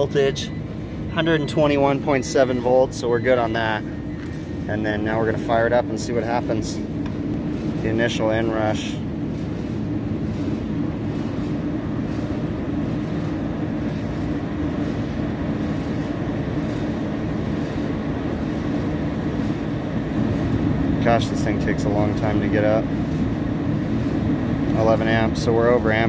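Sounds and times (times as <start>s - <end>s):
exhaust fan humming: 0.0s - 26.0s.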